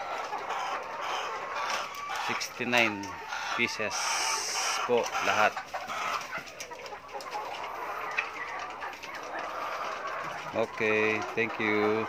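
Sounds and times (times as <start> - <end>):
hens clucking: 0.0 - 12.0.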